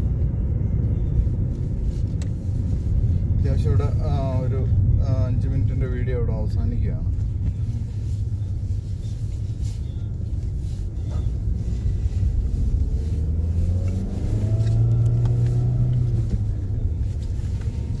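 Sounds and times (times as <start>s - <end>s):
car engine: 0.0s - 18.0s
road rumble: 0.0s - 18.0s.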